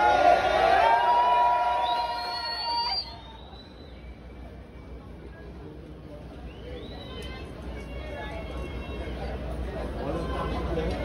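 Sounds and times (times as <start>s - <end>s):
crowd cheering: 0.0s - 3.8s.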